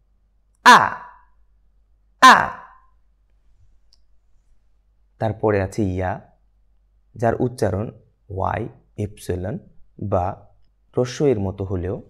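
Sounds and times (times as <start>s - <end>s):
person pronouncing a short vowel: 0.6s - 1.2s, 2.2s - 2.8s.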